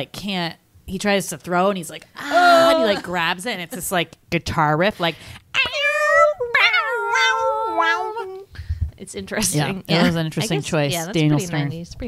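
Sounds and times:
woman imitating guitar riff: 0:02.2 - 0:03.1.

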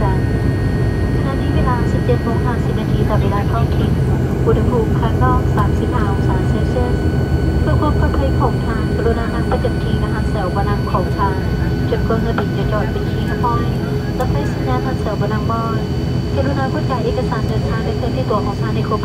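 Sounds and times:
passengers chattering: 0:00.0 - 0:00.3, 0:01.0 - 0:19.0.

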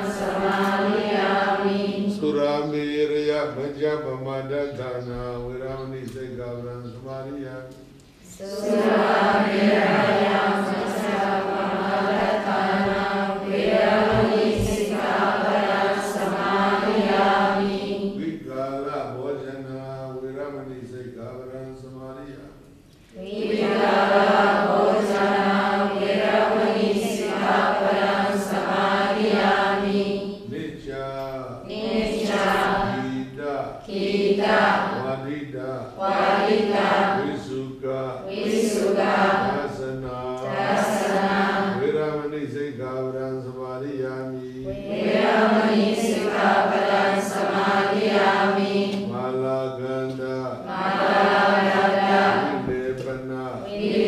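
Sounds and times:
group chanting in unison: 0:00.0 - 0:04.8, 0:08.2 - 0:20.2, 0:23.1 - 0:54.0.

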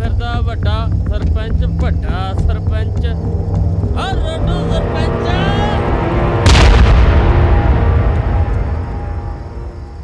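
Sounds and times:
dark background music: 0:00.0 - 0:10.0
loud boom hit: 0:06.1 - 0:09.3.

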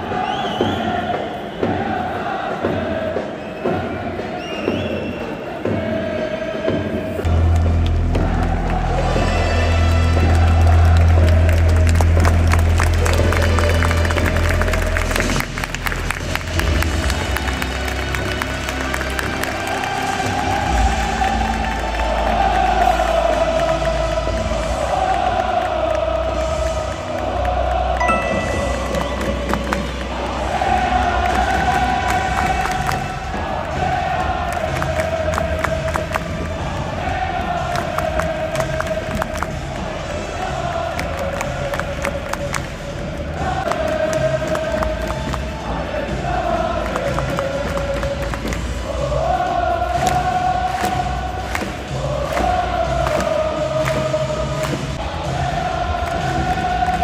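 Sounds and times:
crowd chanting and singing: 0:00.0 - 0:57.0.

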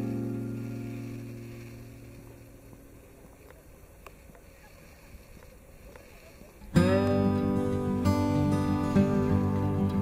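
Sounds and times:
acoustic guitar music: 0:00.0 - 0:03.7, 0:06.6 - 0:10.0
faint background hiss: 0:00.0 - 0:10.0.

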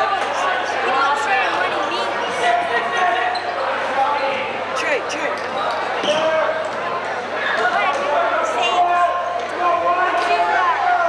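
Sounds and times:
spectators chattering and shouting: 0:00.0 - 0:11.0
sneakers squeaking: 0:02.9 - 0:04.6.

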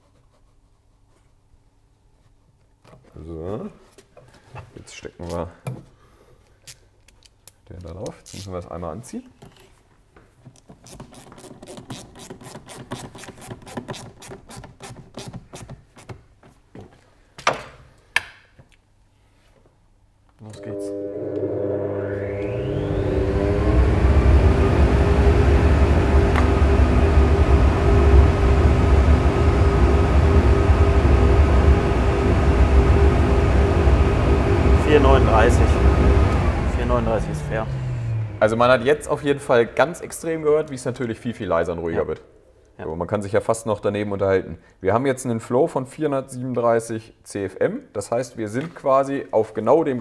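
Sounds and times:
flow bench whining drone: 0:20.4 - 0:41.0
deep rumble: 0:20.7 - 0:40.9.

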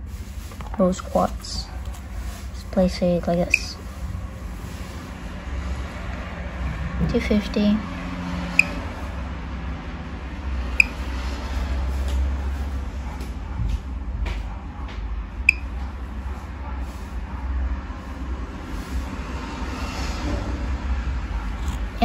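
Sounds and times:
steady low rumble: 0:00.0 - 0:22.0.

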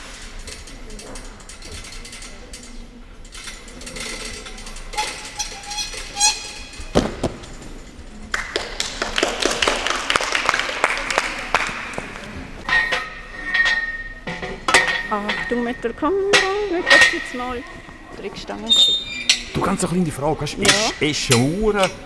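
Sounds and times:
scattered hand clapping: 0:08.3 - 0:12.3.

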